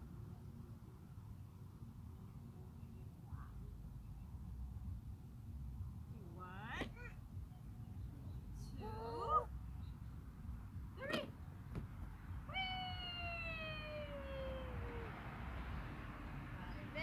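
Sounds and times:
toddler squealing and calling: 0:12.5 - 0:15.2.

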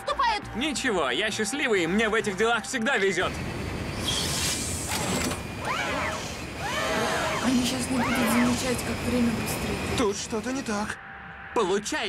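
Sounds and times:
low mechanical hum: 0:03.2 - 0:11.3
turret motor whining: 0:03.3 - 0:10.6.

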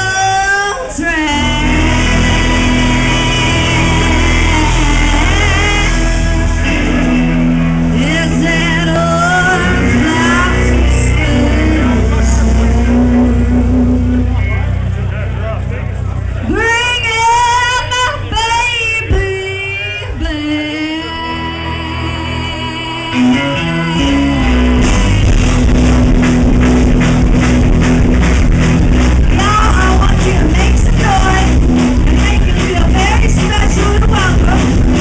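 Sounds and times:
woman singing: 0:00.0 - 0:07.0, 0:07.8 - 0:13.4, 0:16.5 - 0:24.8, 0:29.2 - 0:35.0
band playing quietly: 0:00.0 - 0:35.0
guitar accompaniment: 0:00.0 - 0:35.0.

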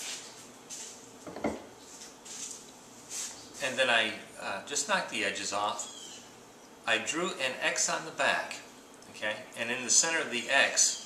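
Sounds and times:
wood knocking on countertop: 0:01.2 - 0:01.7.

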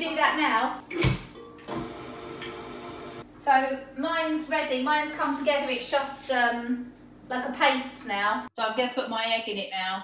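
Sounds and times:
stand mixer motor running: 0:01.7 - 0:03.2.

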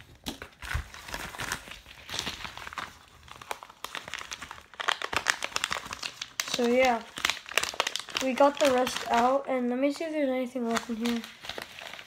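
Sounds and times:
plastic mailer crinkling: 0:00.0 - 0:12.0.

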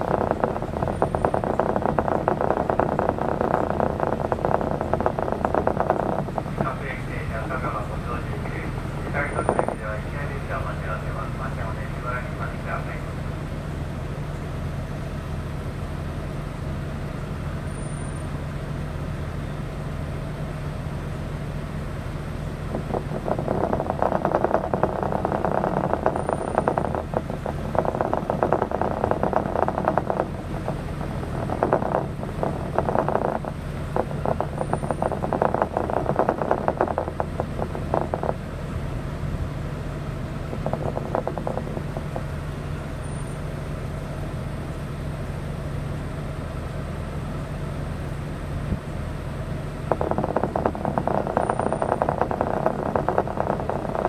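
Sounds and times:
diesel engine idling: 0:00.0 - 0:54.0.

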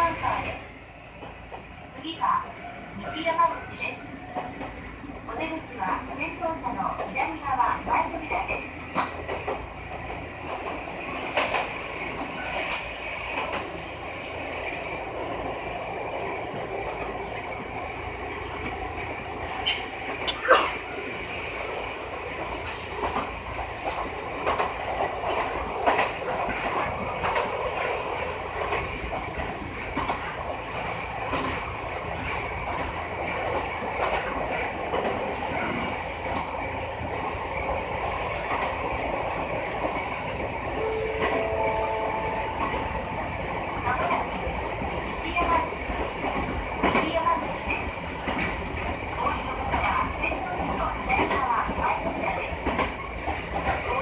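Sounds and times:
train running noise: 0:00.0 - 0:54.0.

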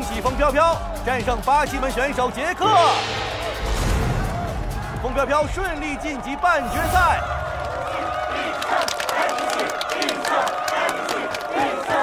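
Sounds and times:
crowd cheering and chanting: 0:00.0 - 0:12.0
people clapping: 0:07.1 - 0:12.0.

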